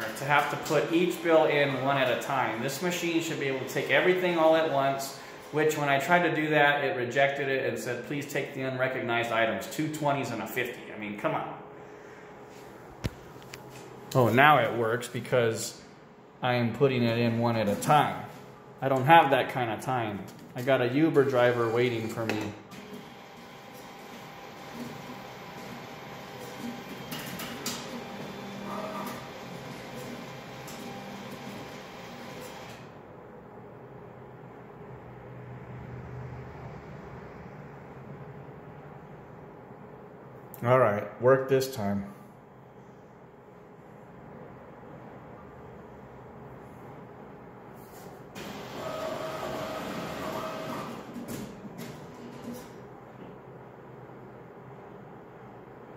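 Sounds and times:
cash machine whirring: 0:21.1 - 0:33.0, 0:48.3 - 0:52.8.

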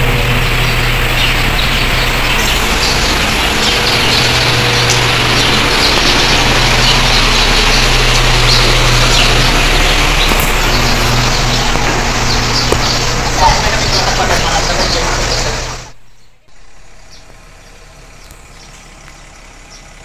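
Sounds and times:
birds chirping: 0:00.0 - 0:20.0
low hum: 0:00.0 - 0:20.0
outdoor noise: 0:00.0 - 0:20.0.

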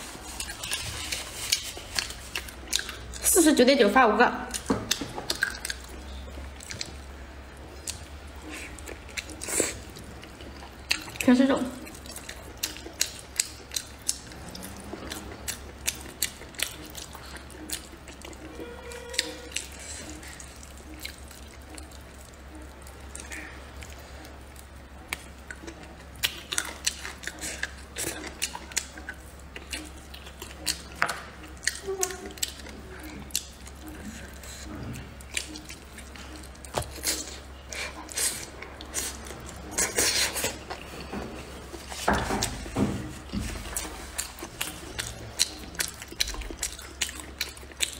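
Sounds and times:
chewing and sucking meat: 0:00.0 - 0:03.4, 0:04.5 - 0:47.9.

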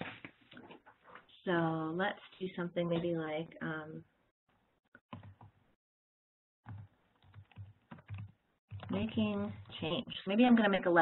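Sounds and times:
typing on computer keyboard: 0:05.1 - 0:05.5, 0:06.7 - 0:09.0.

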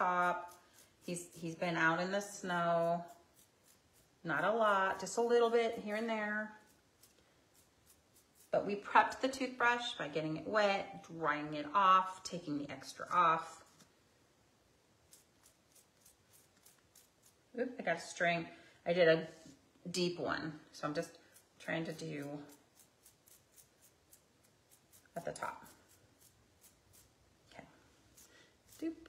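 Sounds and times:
toothbrush bristle ticks: 0:00.0 - 0:02.0, 0:02.7 - 0:08.6, 0:15.1 - 0:17.4, 0:21.3 - 0:27.2.

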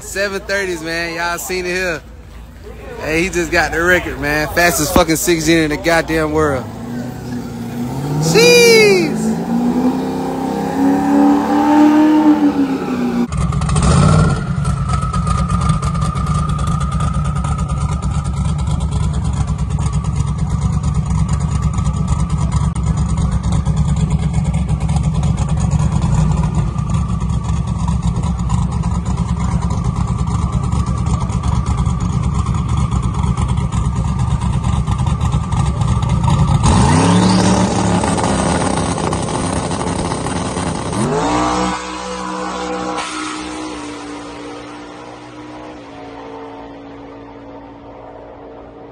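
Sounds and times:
car engine revving and accelerating: 0:04.8 - 0:48.9.

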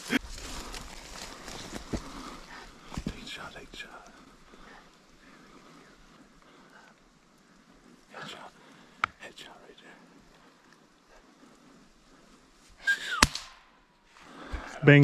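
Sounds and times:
faint whispering: 0:01.4 - 0:12.5.

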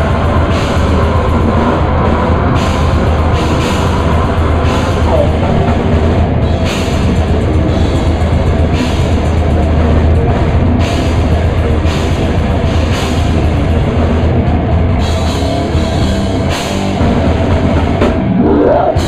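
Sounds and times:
death metal band playing: 0:00.0 - 0:19.0.

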